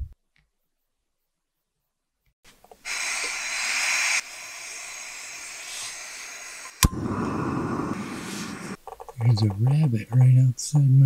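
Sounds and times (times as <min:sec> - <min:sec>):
gas hissing from stove: 0:02.8 - 0:08.8
burner rushing: 0:02.9 - 0:08.8
igniter click: 0:06.8 - 0:07.9.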